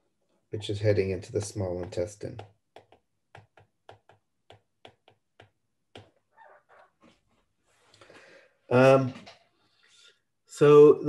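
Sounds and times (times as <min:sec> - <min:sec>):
stylus tapping on tablet screen: 0:01.3 - 0:06.2
stylus scratching: 0:05.9 - 0:07.3.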